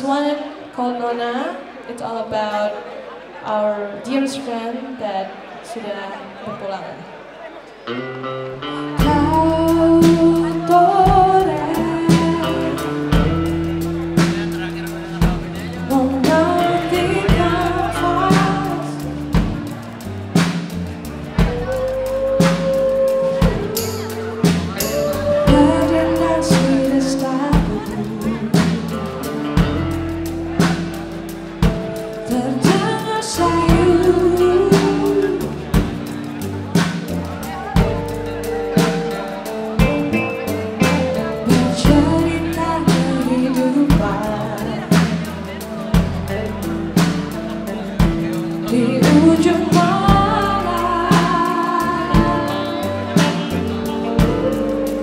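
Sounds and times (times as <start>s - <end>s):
live band playing slow song: 6.4s - 55.0s
drum kit striking: 12.1s - 33.0s, 33.7s - 42.3s.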